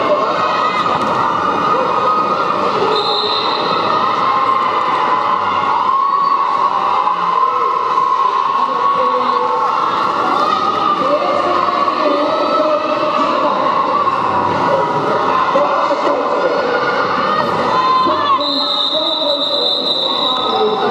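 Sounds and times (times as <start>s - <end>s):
hubbub of voices in a hall: 0.0s - 20.9s.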